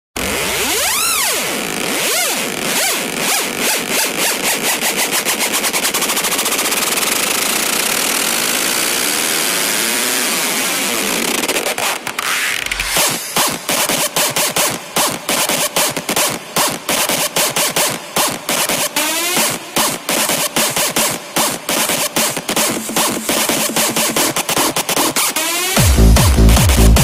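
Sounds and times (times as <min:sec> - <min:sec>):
chopped rhythmic stabs: 0:00.2 - 0:09.0, 0:11.2 - 0:27.0
rush of noise: 0:12.0 - 0:14.2.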